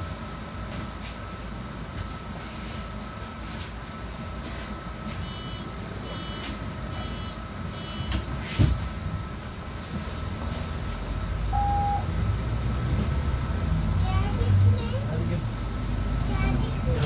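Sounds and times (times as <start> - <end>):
bus engine rumble: 0.0 - 17.0
short low beep: 5.2 - 8.2, 11.5 - 12.1
high warning beeps: 5.2 - 8.8, 11.5 - 12.1
bus doors thumping shut: 8.0 - 8.9.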